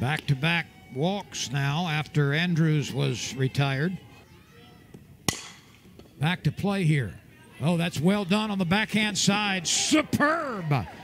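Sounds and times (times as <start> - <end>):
faint stadium background: 0.0 - 11.0
bat striking softball: 4.9 - 6.2.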